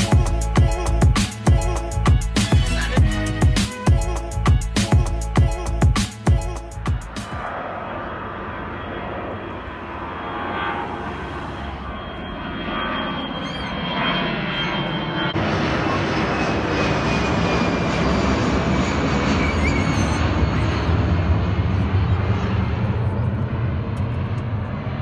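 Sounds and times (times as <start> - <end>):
faint high engine whine: 0.0 - 25.0
jet airliner engine rush: 0.0 - 25.0.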